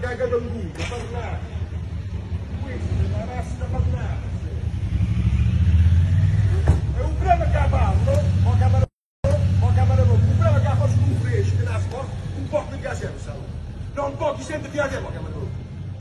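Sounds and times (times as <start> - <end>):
motorcycle engines rumbling: 0.0 - 16.0.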